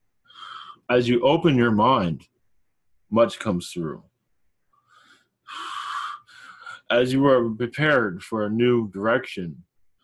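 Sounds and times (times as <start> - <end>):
man breathing in: 0.2 - 0.9, 4.8 - 6.9.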